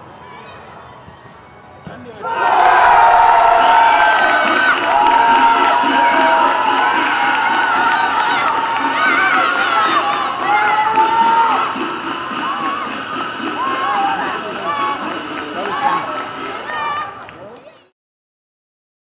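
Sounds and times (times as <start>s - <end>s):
crowd cheering and shouting: 0.0s - 17.9s.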